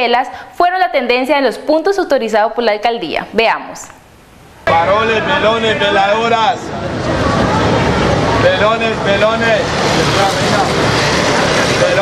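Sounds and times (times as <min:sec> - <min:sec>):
street traffic: 0:04.5 - 0:12.0
vendor shouting: 0:04.7 - 0:09.7
motorcycle passing close by: 0:04.7 - 0:12.0.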